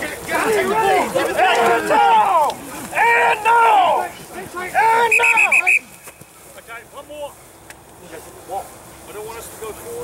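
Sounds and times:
players shouting: 0.0 - 6.2
shuffling: 0.0 - 10.0.

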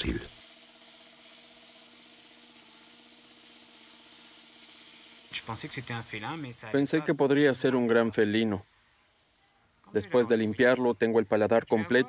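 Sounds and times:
man speaking: 0.0 - 0.3, 5.3 - 8.6, 9.9 - 12.0
dental drill whining: 0.0 - 10.9.

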